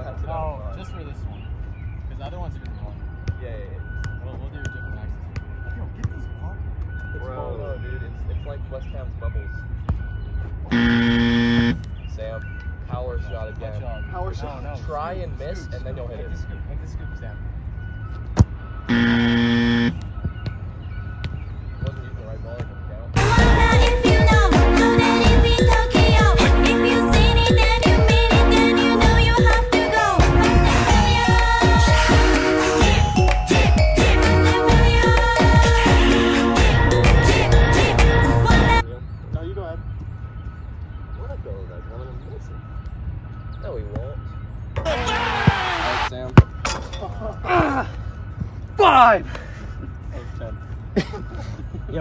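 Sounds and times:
flat buzzer tone: 10.7 - 11.9, 18.7 - 20.0
distant shouts: 44.8 - 46.1
loud shout: 44.8 - 46.1.

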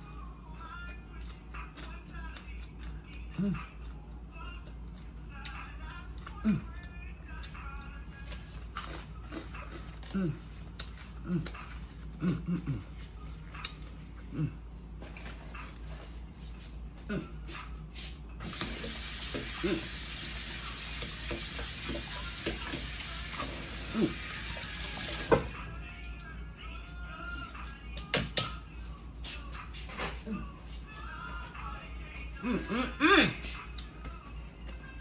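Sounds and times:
kitchen tap running: 18.4 - 25.5.

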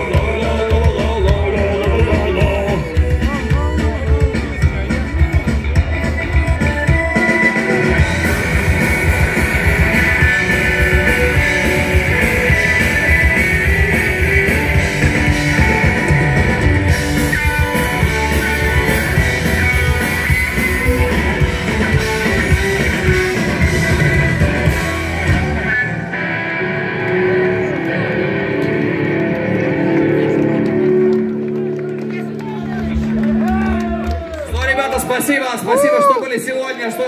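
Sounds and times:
live rock band playing: 0.0 - 36.2.

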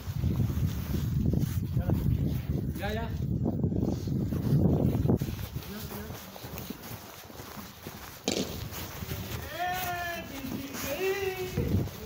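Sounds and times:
sharp knock: 8.3 - 8.6.

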